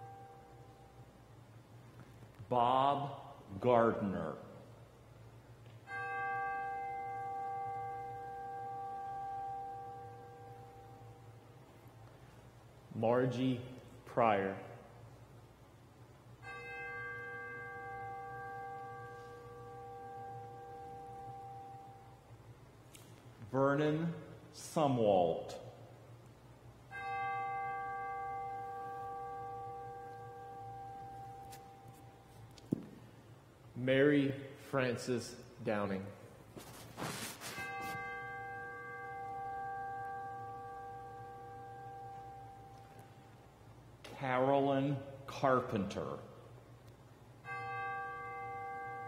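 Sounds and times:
bell tolling: 16.4s - 22.3s, 26.9s - 33.2s, 36.7s - 42.8s.

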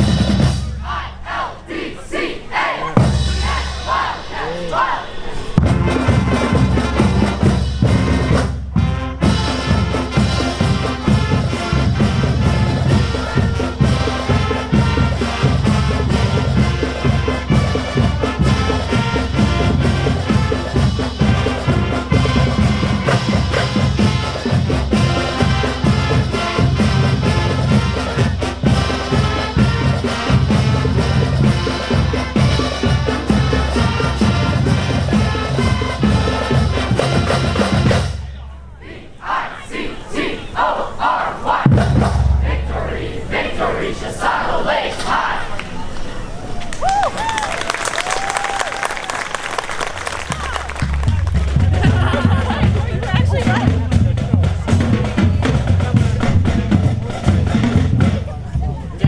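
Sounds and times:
marching band playing: 0.0s - 45.9s, 47.3s - 59.0s
cheering and shouting: 0.7s - 6.6s, 10.8s - 24.4s, 38.2s - 56.0s.

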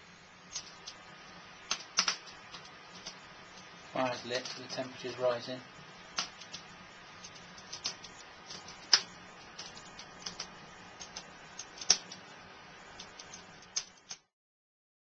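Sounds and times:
wood fire crackling and popping: 0.4s - 4.9s, 6.0s - 14.3s.

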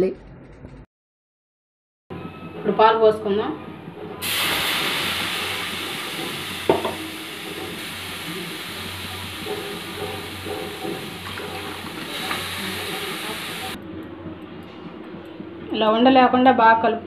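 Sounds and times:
milk sizzling in hot pan: 4.2s - 13.8s.

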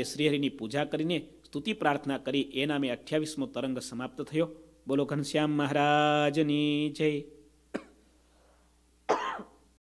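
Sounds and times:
man clearing throat: 7.8s - 8.0s, 9.1s - 9.6s.

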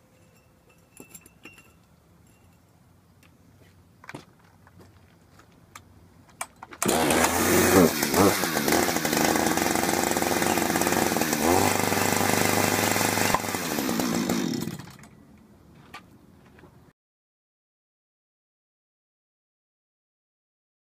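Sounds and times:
chainsaw revving: 6.8s - 15.1s.

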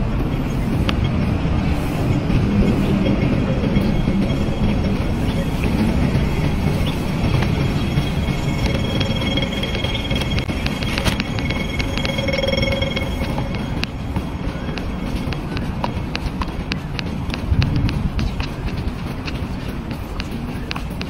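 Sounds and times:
outdoor street noise rumble: 0.0s - 21.0s.

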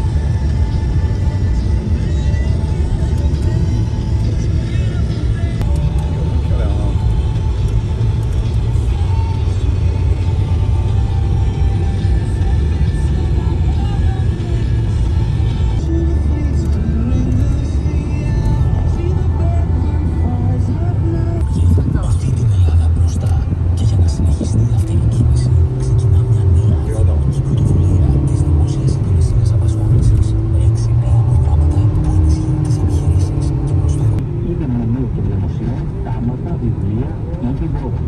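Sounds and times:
car road and engine rumble: 0.0s - 38.0s
music with voice: 0.0s - 38.0s.

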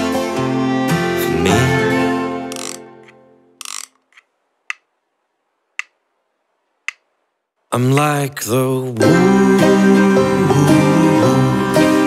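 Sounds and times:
folk song: 0.0s - 2.5s, 7.7s - 12.0s
sharp count-in clicks: 5.8s - 6.0s, 7.9s - 8.2s.

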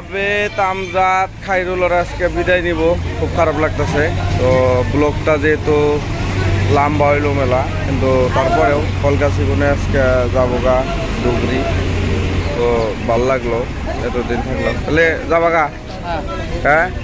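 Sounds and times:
people talking: 0.0s - 17.0s
vehicle engine idling: 0.0s - 17.0s.

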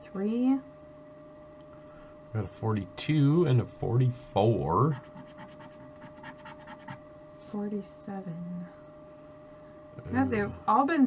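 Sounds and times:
stick scraping scratch-off ticket: 4.9s - 7.0s.

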